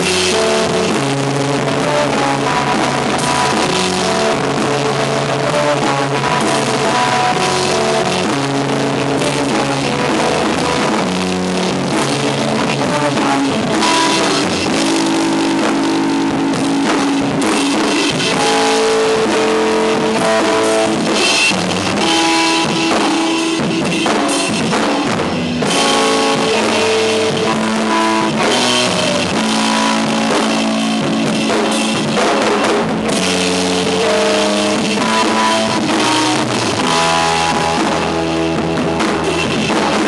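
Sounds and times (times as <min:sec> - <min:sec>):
distorted electric guitars: 0:00.0 - 0:40.0
drums and cymbals: 0:00.0 - 0:40.0.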